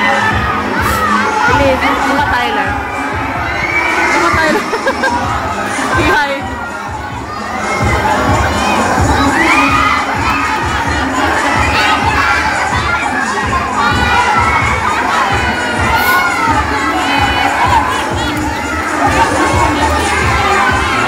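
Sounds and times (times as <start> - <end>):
crowd of children screaming: 0.0 - 21.0.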